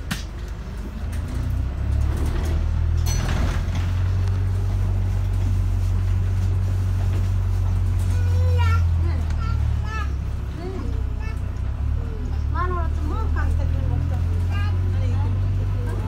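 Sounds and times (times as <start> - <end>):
bus engine rumbling: 0.0 - 16.0.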